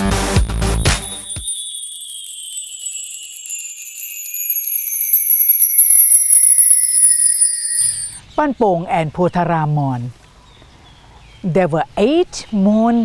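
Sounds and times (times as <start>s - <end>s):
tinkling chime sweep: 0.0s - 8.2s.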